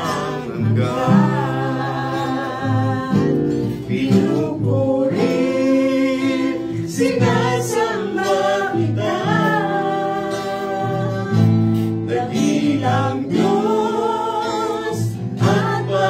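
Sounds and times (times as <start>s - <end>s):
acoustic guitar: 0.0s - 16.0s
people singing together: 0.0s - 16.0s.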